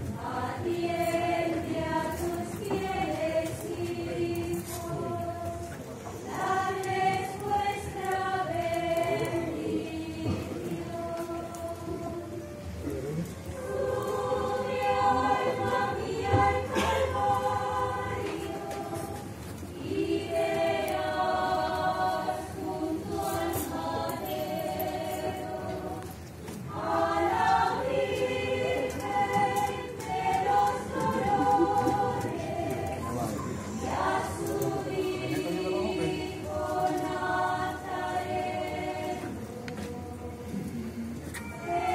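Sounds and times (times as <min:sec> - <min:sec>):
choir singing a slow hymn: 0:00.0 - 0:41.9.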